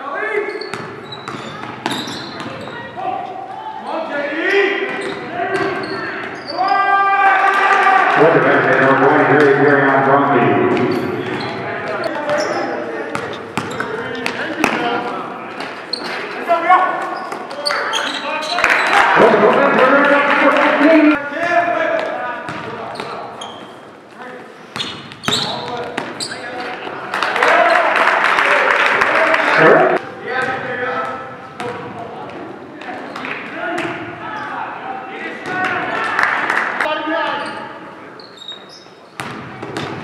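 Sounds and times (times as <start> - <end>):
basketball bouncing on court floor: 0.6 - 2.8, 13.1 - 14.8, 22.0 - 23.2, 31.6 - 32.4, 39.2 - 40.0.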